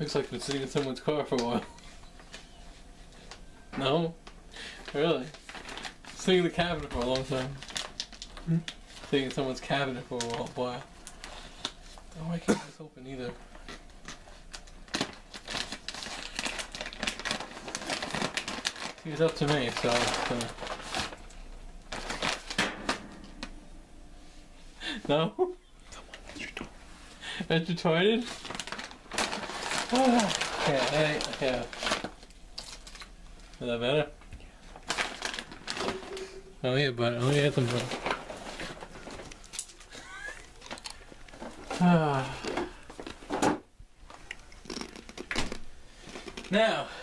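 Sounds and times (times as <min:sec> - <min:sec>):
rustling of items: 0:00.0 - 0:12.4, 0:13.0 - 0:23.6, 0:24.2 - 0:47.0.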